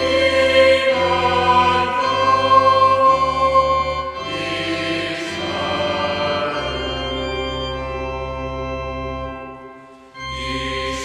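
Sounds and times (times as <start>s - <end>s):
choir singing: 0.0s - 8.1s, 10.2s - 11.0s
sustained accompaniment: 0.0s - 11.0s.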